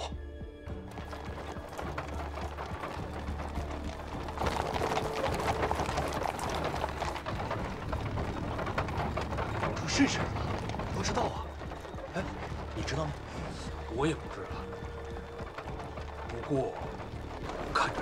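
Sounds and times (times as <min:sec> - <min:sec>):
background music: 0:00.0 - 0:18.0
hooves clip-clopping on stone: 0:00.0 - 0:18.0.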